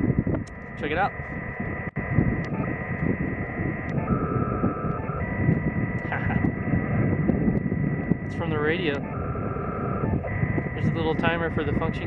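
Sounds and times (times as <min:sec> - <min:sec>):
wind rumble on microphone: 0:00.0 - 0:12.0
radio whistling tones: 0:00.5 - 0:12.0
radio hiss: 0:00.7 - 0:12.0.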